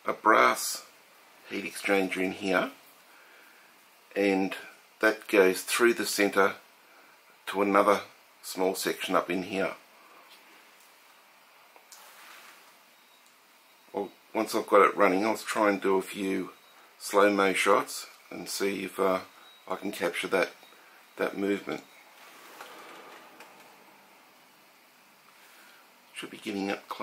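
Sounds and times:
faint steady hiss: 0.0 - 27.0
gas burner hissing: 16.1 - 26.6.

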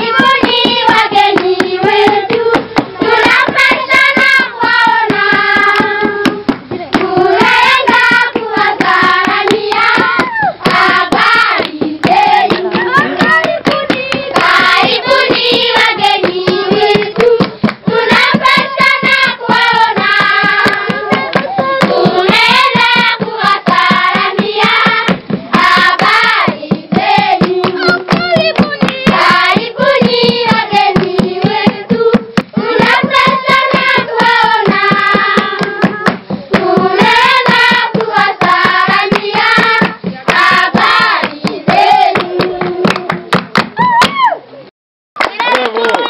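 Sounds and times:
group singing in unison: 0.0 - 43.4
hand claps: 0.0 - 44.3, 45.2 - 46.0.

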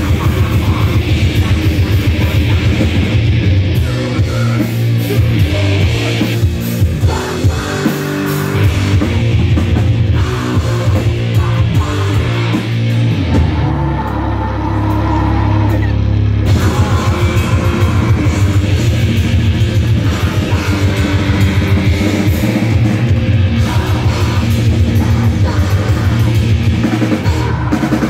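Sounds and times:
fast drumming: 0.0 - 14.1, 14.8 - 28.0
distorted guitar and bass: 0.0 - 28.0.

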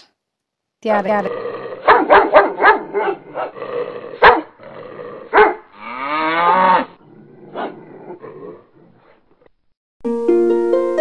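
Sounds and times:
dogs barking: 1.8 - 3.6, 4.2 - 4.6, 5.3 - 5.7, 7.5 - 7.8.

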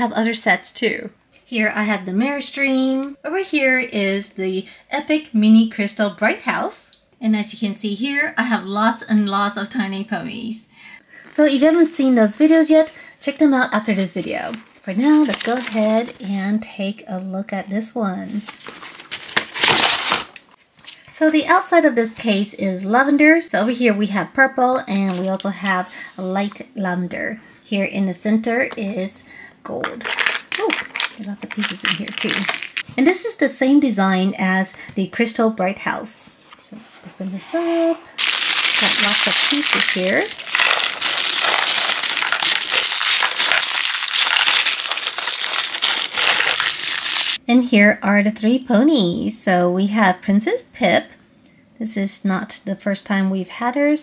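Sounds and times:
tissue paper crinkling: 15.1 - 16.2, 18.4 - 20.3, 30.1 - 32.8, 38.2 - 47.4
cardboard packaging scraping rustle: 18.5 - 20.3.

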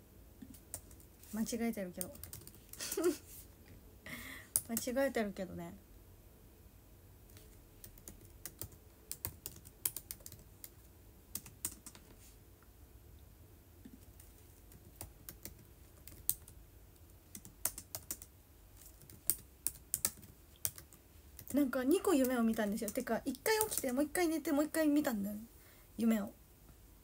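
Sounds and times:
typing clicks: 7.8 - 10.4.

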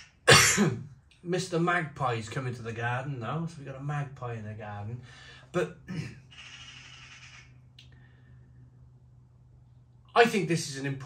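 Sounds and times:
magpie chattering: 6.3 - 7.5.

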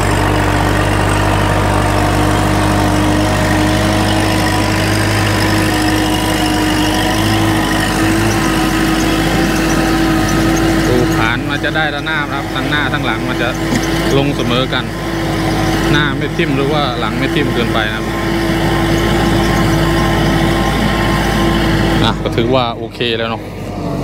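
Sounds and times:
tractor diesel engine under load: 0.0 - 24.0.

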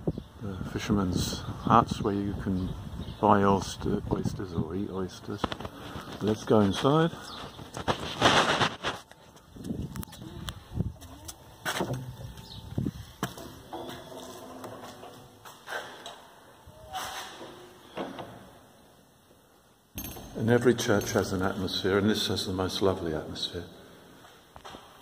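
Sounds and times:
wooden door opening and closing: 17.2 - 18.6.

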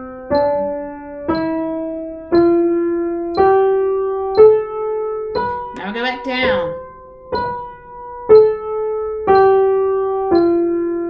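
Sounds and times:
piano playing a scale: 0.0 - 11.0.

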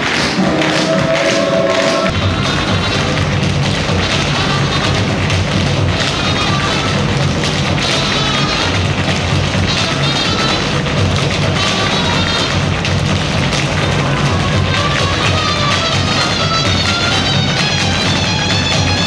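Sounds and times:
music playing: 0.0 - 19.0
tap shoes clattering on stage: 0.0 - 19.0.

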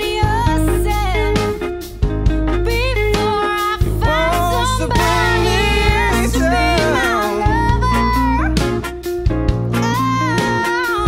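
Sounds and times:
band playing instrumental: 0.0 - 11.0
lead melody bending up: 0.3 - 9.3
drum hits: 3.8 - 9.7.

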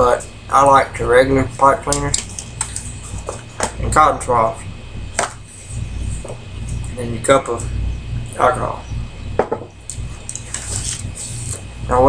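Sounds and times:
low electrical hum: 0.0 - 12.0
soft hissing breaths: 10.2 - 11.7.

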